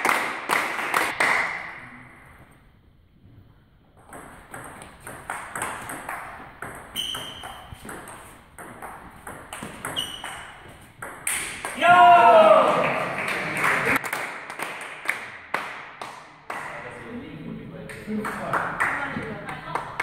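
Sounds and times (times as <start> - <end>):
shoe squeaks: 6.9 - 8.4, 9.6 - 10.9
person shouting: 11.8 - 12.8.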